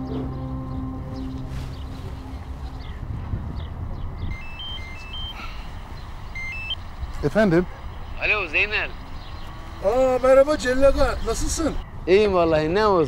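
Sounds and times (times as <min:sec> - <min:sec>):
held music chord: 0:00.0 - 0:03.2
mobile phone ringtone beeps: 0:04.3 - 0:05.6, 0:06.3 - 0:06.8.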